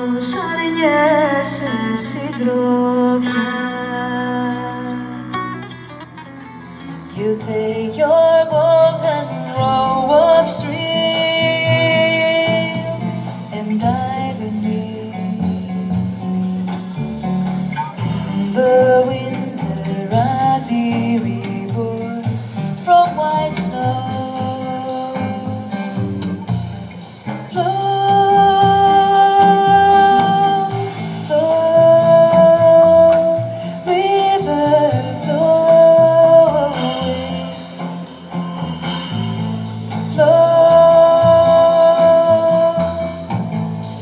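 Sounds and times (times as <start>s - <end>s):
woman singing: 0.0s - 5.6s, 7.1s - 15.9s, 18.2s - 26.0s, 27.5s - 37.8s, 40.0s - 43.4s
double bass: 0.0s - 44.0s
plucked string instrument: 0.0s - 44.0s
drum kit: 5.1s - 44.0s.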